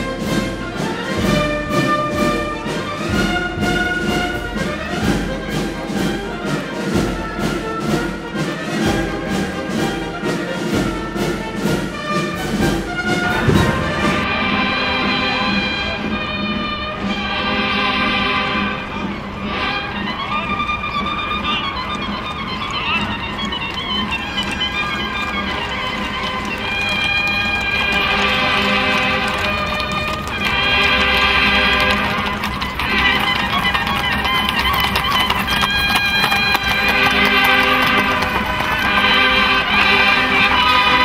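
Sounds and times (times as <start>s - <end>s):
trumpets playing a march: 0.0s - 41.0s.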